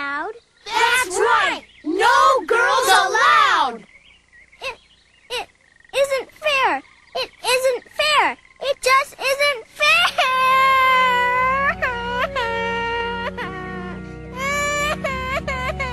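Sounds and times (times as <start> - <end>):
cartoon voice crying: 9.8 - 15.9.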